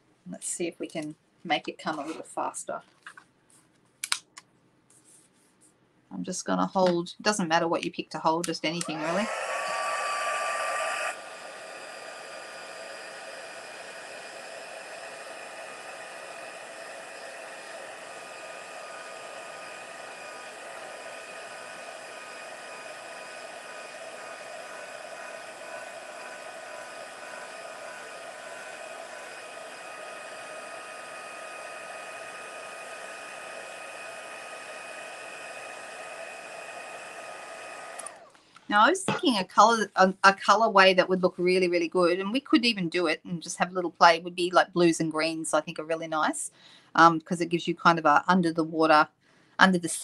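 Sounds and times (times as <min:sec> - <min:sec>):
heat tool blowing air: 0:08.7 - 0:39.0.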